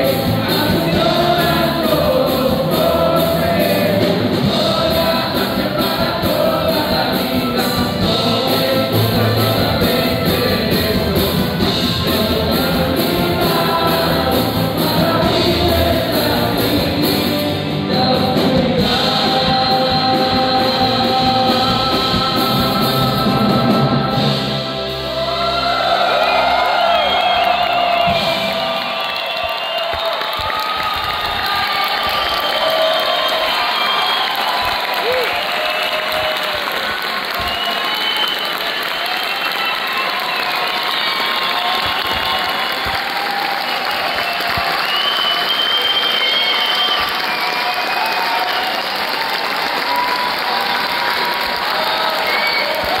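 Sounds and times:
cheering and whistles: 0:24.9 - 0:53.0
audience applause: 0:25.2 - 0:53.0.

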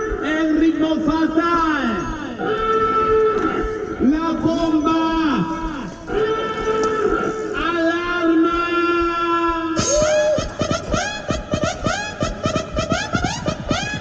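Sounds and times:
fast electronic beat: 0:00.0 - 0:14.0
held synth chords: 0:00.0 - 0:14.0.

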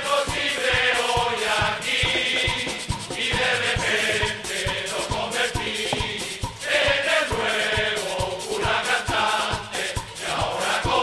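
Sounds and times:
chorus singing in unison: 0:00.0 - 0:11.0
steady drum beat: 0:00.3 - 0:11.0.

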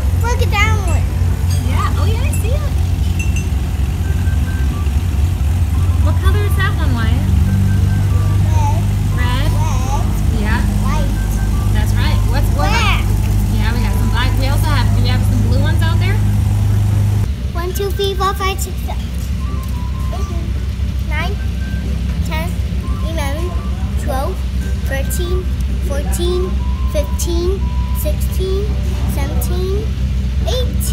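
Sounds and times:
child chattering and singing: 0:00.0 - 0:01.1, 0:08.3 - 0:13.2, 0:17.6 - 0:21.5, 0:22.2 - 0:30.9
propeller plane engine hum: 0:00.0 - 0:30.9.

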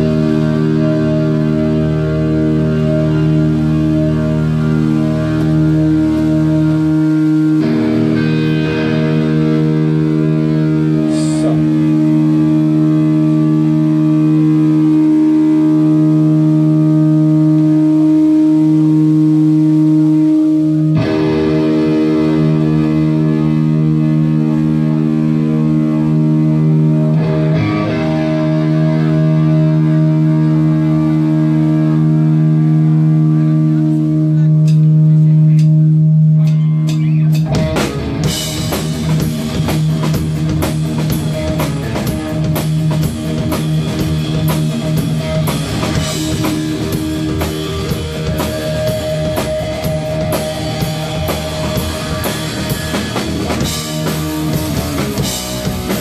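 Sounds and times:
distorted electric guitar chords: 0:00.0 - 0:56.0.

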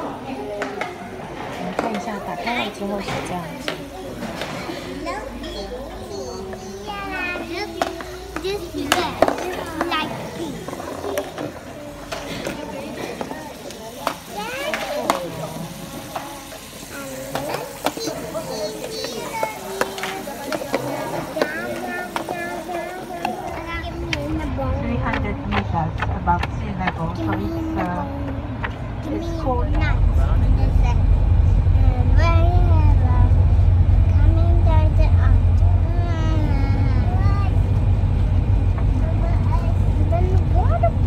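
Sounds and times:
children chattering: 0:00.0 - 0:41.0.

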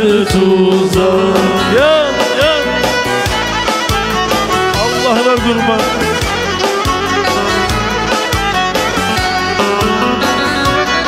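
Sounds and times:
steady percussive beat: 0:00.1 - 0:11.0
bowed string melody with pitch bends: 0:00.5 - 0:11.0.

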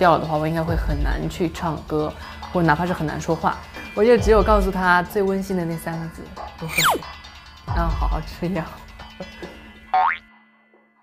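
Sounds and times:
faint background music: 0:00.0 - 0:10.2
cartoon boing: 0:06.7 - 0:07.0, 0:10.0 - 0:10.3.

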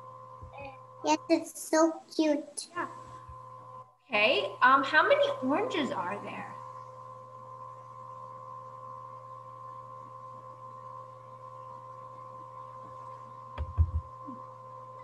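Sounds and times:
electrical hum: 0:00.0 - 0:15.0
soft thumps: 0:13.6 - 0:14.1.

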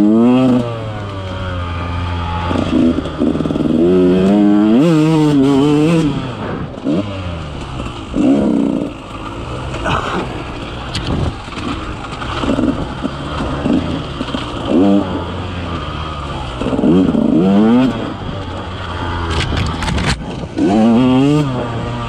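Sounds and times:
two-stroke engine revving: 0:00.0 - 0:22.0.

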